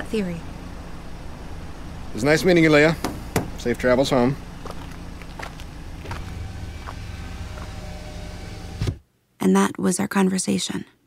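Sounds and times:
car engine running: 0.0 - 9.0
thump: 3.0 - 3.6.

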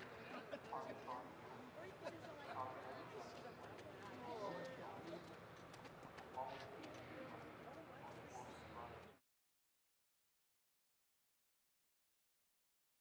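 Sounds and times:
people talking: 0.0 - 5.4.

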